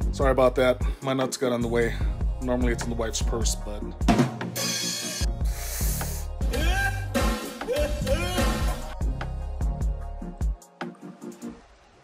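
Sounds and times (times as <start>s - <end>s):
drum hits: 4.0s - 4.7s, 6.4s - 9.0s.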